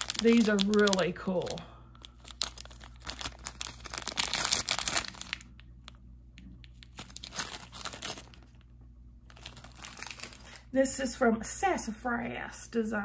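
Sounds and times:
plastic packet crinkling: 0.0s - 8.7s, 9.3s - 10.7s.

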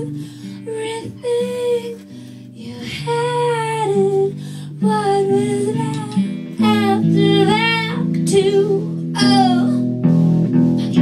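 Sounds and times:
woman singing: 0.0s - 10.0s, 10.8s - 11.0s
guitar chords: 0.0s - 11.0s.

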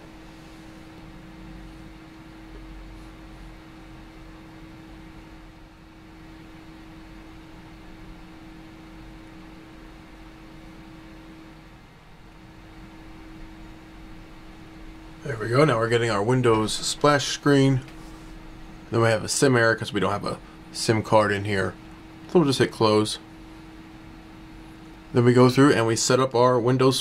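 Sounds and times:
low hum with constant tone: 0.0s - 27.0s.

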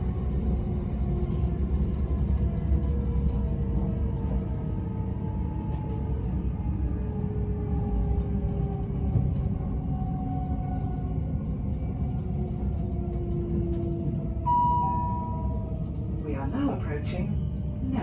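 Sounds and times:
train wheels rumbling on track: 0.0s - 18.0s
steady high tone: 14.5s - 15.8s.

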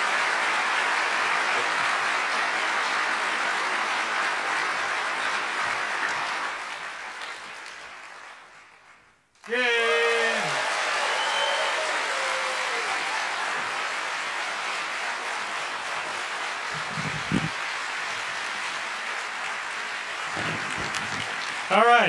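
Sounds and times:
large audience applauding: 0.0s - 22.0s.

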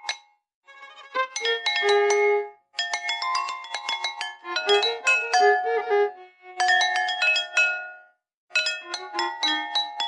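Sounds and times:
violin melody: 0.7s - 2.5s, 4.4s - 6.6s
porcelain bowls struck with sticks: 2.8s - 5.7s, 6.6s - 10.0s.

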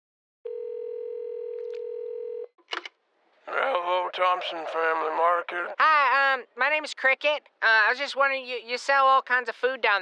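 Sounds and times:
telephone ringback tone: 0.5s - 2.5s.

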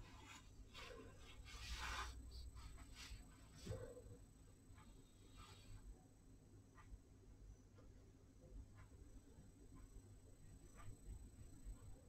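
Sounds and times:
paintbrush scratching on palette: 0.0s - 3.2s.

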